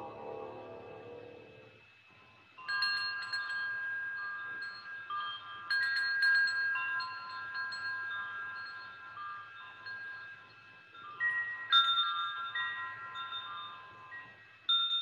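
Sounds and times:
wind chimes ringing: 2.6 - 15.0.

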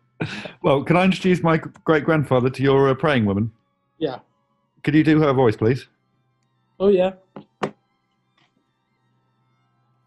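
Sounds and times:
man saying yeah: 0.2 - 3.5, 4.9 - 5.8.

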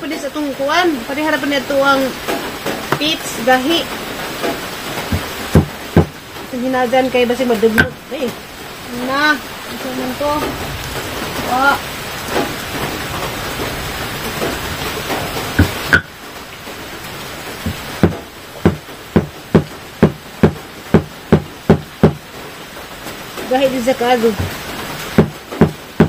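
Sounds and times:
steady hiss: 0.0 - 26.0.

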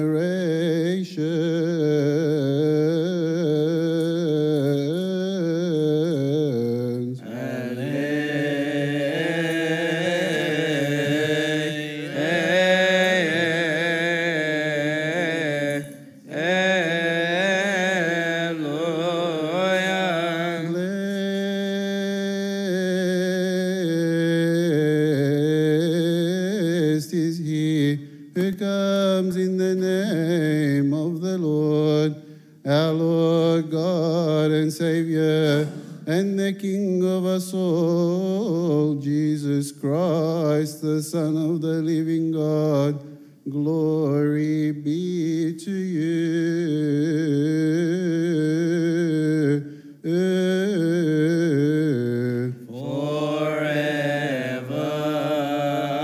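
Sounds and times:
man chanting a hymn: 0.0 - 56.0.

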